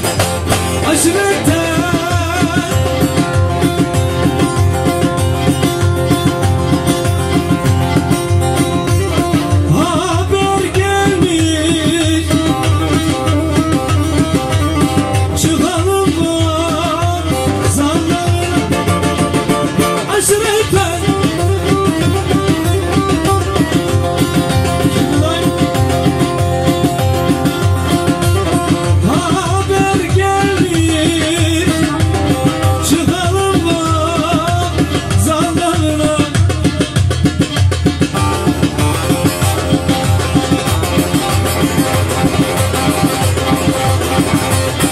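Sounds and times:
lute playing melody: 0.0s - 34.7s, 38.0s - 44.9s
steady drum beat: 0.0s - 44.9s
man singing: 0.6s - 3.6s, 9.3s - 23.6s, 24.8s - 26.4s, 28.4s - 37.2s.

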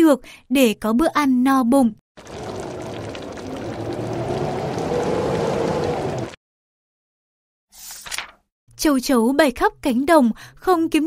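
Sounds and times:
pot of food bubbling: 2.2s - 6.4s.

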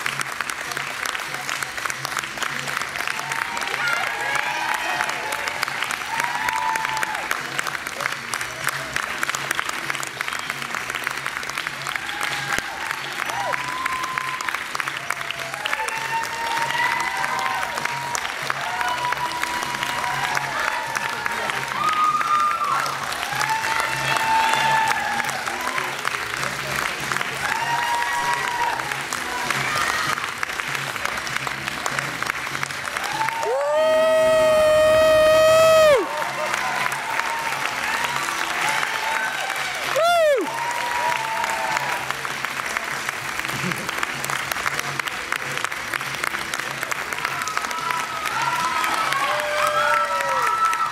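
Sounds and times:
audience clapping: 0.0s - 50.9s
whoops and shouts: 6.1s - 7.3s, 11.9s - 14.6s, 15.4s - 25.8s, 27.4s - 28.9s, 33.0s - 42.0s, 47.3s - 50.9s.

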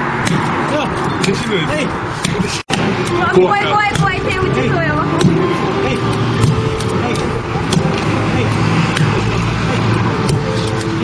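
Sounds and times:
road traffic rumble: 0.0s - 11.0s
people talking: 0.7s - 11.0s.

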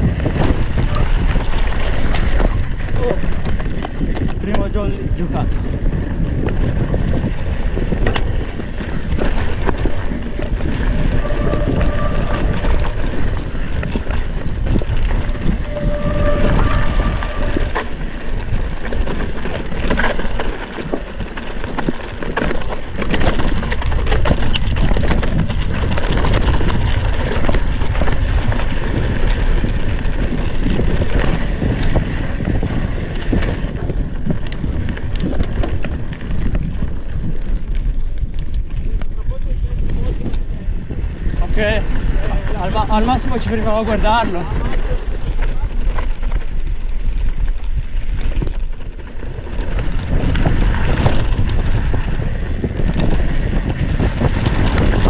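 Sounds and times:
bike rattling and clattering: 0.0s - 55.0s
wind rush on microphone: 0.0s - 55.0s
tyres crunching over stones: 17.8s - 32.4s.

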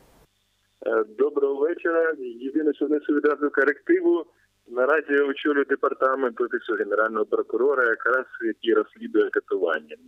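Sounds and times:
man speaking over telephone: 0.8s - 10.0s.

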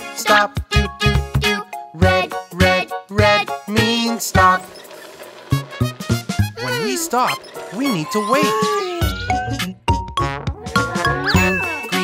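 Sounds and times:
children's background music: 0.0s - 12.0s
cartoon ding: 10.9s - 12.0s
tinkling chimes: 11.4s - 12.0s.

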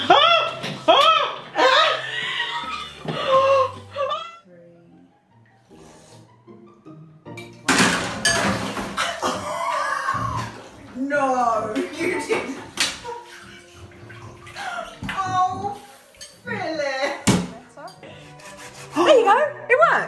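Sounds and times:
soft background music: 0.0s - 20.0s
water splashing in bathtub: 7.4s - 17.9s.

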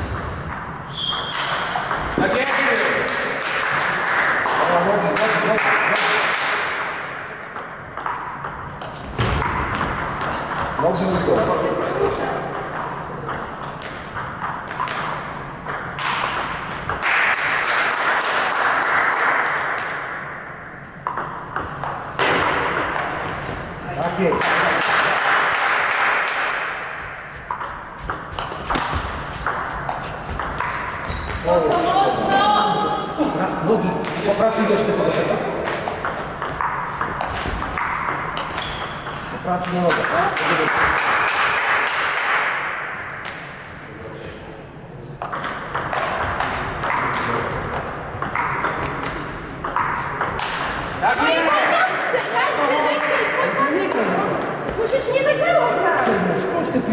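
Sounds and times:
table tennis ball clicking: 35.0s - 42.0s, 45.2s - 51.3s.

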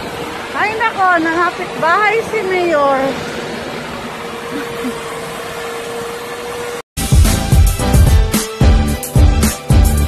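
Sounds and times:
music with heavy beat: 7.0s - 10.0s.

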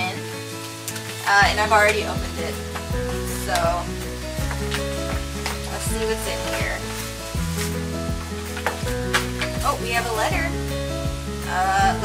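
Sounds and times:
sharp crackles: 0.0s - 12.0s
soft background music: 0.0s - 12.0s.

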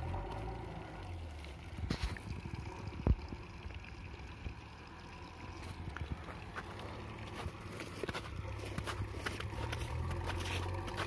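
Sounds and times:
diesel engine humming: 0.0s - 11.0s.

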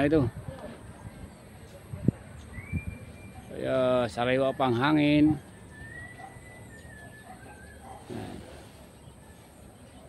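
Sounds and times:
distant bird call: 2.4s - 9.9s.

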